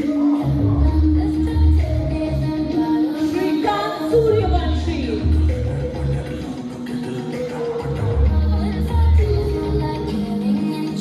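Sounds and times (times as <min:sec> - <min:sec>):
pop song over loudspeakers: 0:00.0 - 0:11.0.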